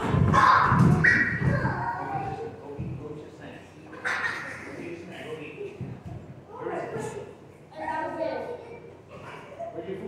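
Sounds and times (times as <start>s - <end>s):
children's voices: 6.5s - 9.8s.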